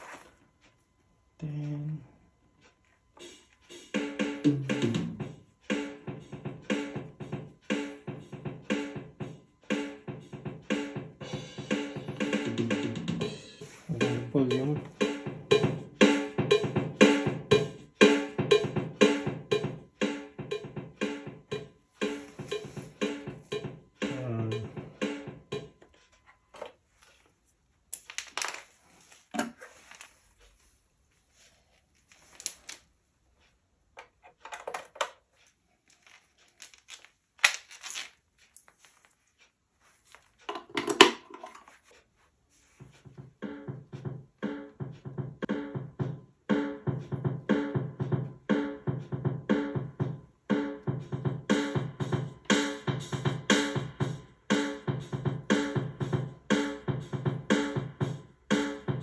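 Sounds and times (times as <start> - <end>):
drum machine rhythm: 2.6 - 26.3, 42.6 - 59.0
handling clicks and knocks: 34.0 - 35.3, 40.2 - 41.8.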